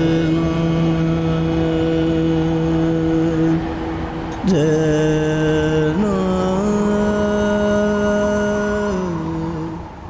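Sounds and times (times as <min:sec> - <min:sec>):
man singing a long note: 0:00.0 - 0:09.9.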